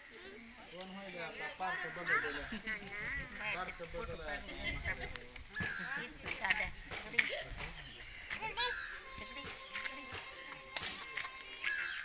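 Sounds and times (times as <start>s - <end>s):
small children's voices: 8.3s - 9.0s.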